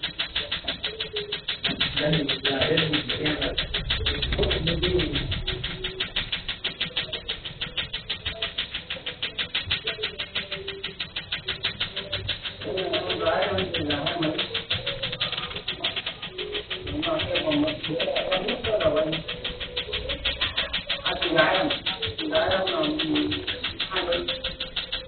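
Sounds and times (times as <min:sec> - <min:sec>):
laser firing sharp clicks: 0:00.0 - 0:25.0.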